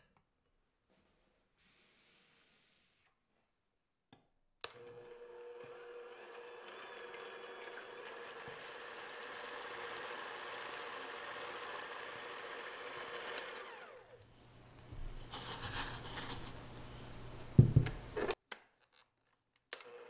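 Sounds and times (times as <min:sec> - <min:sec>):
electric hand mixer whipping: 0:04.8 - 0:15.4.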